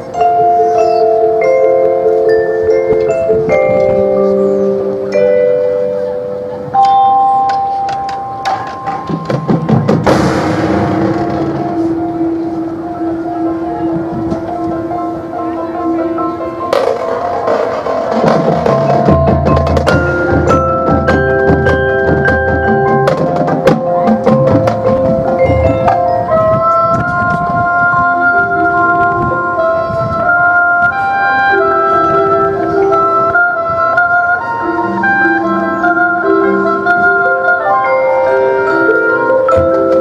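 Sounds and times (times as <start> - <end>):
marching band playing: 1.2 - 40.0
percussion strikes: 6.6 - 15.1, 15.8 - 27.5
quick percussion strikes: 6.8 - 12.5.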